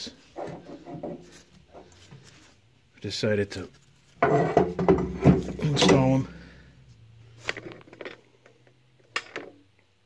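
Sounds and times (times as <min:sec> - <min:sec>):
man speaking: 0:03.0 - 0:03.8, 0:05.5 - 0:06.4.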